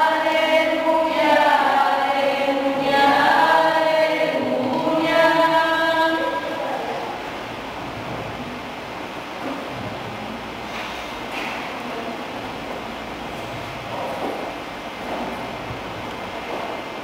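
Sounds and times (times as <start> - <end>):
background hiss: 0.0 - 17.0
voices singing in church: 0.0 - 17.0.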